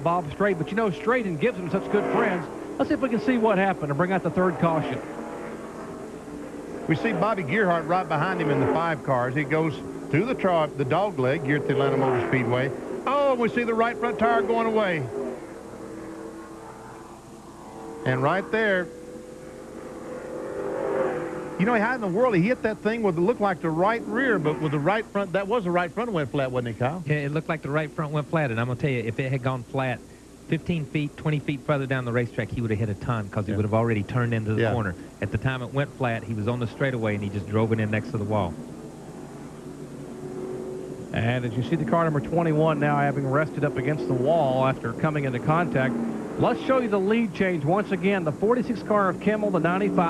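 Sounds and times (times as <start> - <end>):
race car engines droning: 0.0 - 50.0.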